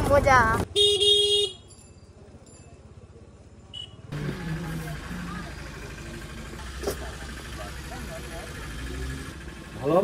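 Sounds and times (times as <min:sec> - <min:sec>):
bustle of crowded shop: 0:00.0 - 0:10.0
vehicle horn honking: 0:00.8 - 0:01.6
motor scooter running: 0:04.1 - 0:10.0.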